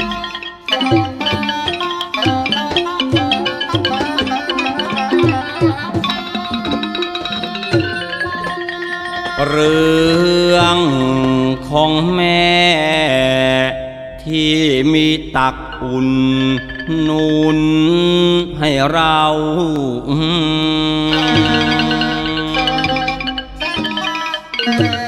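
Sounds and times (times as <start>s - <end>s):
musical accompaniment: 0.0s - 11.7s, 15.0s - 17.8s, 21.0s - 25.0s.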